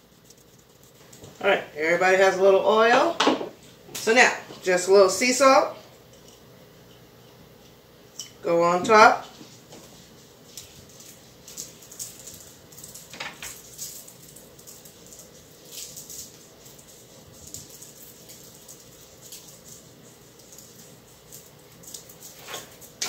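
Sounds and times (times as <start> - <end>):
salt grains ticking: 0.0 - 2.4, 9.8 - 23.0
faint steady hum: 0.0 - 23.0.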